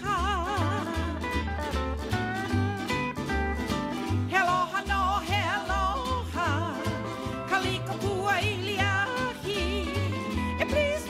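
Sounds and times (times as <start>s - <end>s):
person singing with vibrato: 0.0s - 1.5s, 4.2s - 11.0s
low bass notes: 0.0s - 11.0s.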